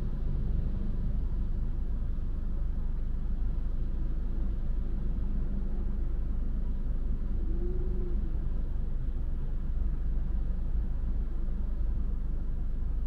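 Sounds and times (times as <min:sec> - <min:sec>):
faint engine whine: 0:00.0 - 0:13.0
traffic rumble: 0:00.0 - 0:13.0.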